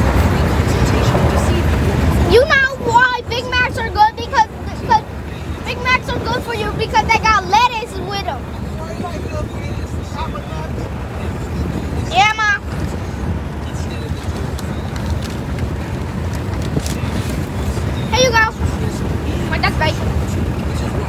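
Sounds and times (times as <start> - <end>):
road and engine rumble in car: 0.0 - 21.0.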